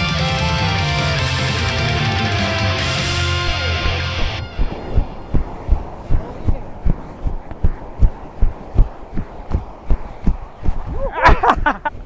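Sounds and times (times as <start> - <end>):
faint surf washing: 2.9 - 12.0.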